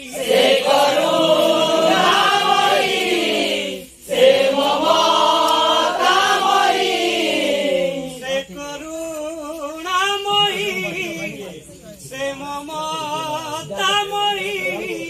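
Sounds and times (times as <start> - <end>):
chorus of voices chanting: 0.0 - 8.2.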